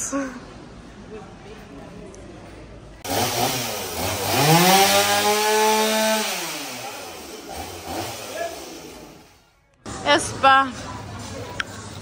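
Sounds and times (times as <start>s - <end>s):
chainsaw revving: 3.0s - 9.4s.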